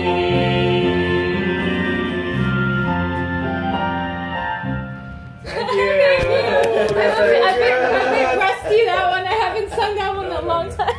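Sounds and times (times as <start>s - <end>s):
people chattering: 5.5s - 10.9s.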